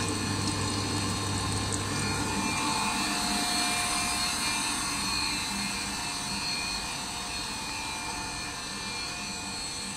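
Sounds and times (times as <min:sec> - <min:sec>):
high-pitched machine tones: 0:00.0 - 0:09.9
machine drone: 0:00.0 - 0:09.9.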